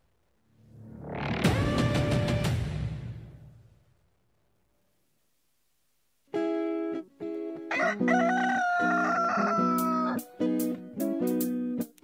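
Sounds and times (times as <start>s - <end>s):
plucked string theme music: 0.6s - 3.6s, 6.3s - 12.0s
rooster crowing: 7.7s - 10.2s.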